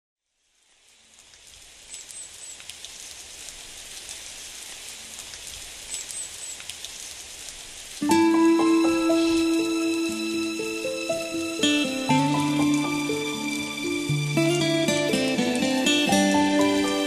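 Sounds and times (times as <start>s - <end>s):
steady rain: 0.3s - 17.0s
water drips: 0.8s - 10.6s.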